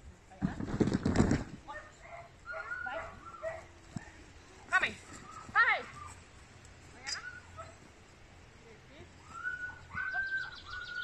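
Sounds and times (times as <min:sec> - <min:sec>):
dog barking and yipping: 0:01.7 - 0:04.2, 0:09.4 - 0:11.0.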